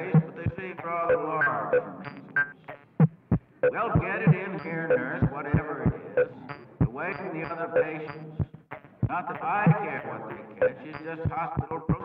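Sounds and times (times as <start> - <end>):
deep low thumps: 0.0 - 0.8, 8.4 - 9.2
fragmented man's recorded voice: 0.0 - 2.3, 3.7 - 12.0.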